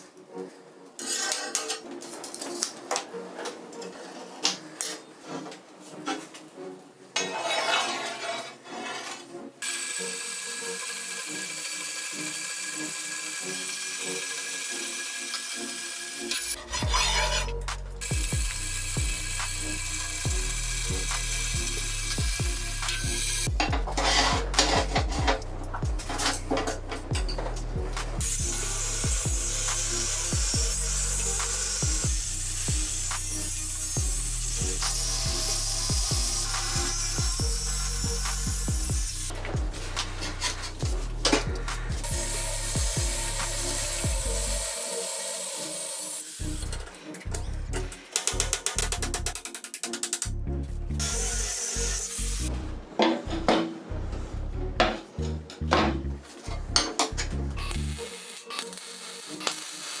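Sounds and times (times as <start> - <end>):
background music: 0.0 - 60.0
angle grinder cutting steel: 7.2 - 50.3, 51.0 - 52.6, 57.6 - 60.0.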